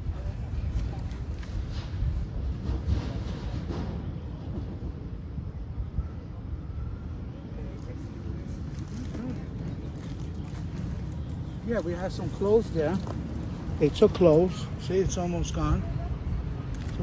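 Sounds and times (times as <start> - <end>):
faint indistinct voices: 0.0 - 17.0.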